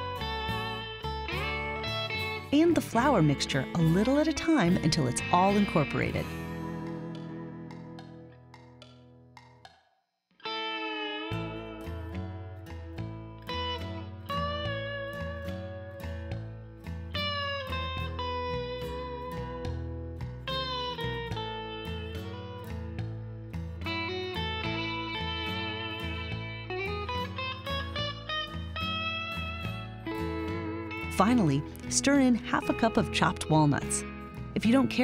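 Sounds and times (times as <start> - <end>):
instrumental music with sliding melody: 0.0 - 9.8, 10.4 - 35.0.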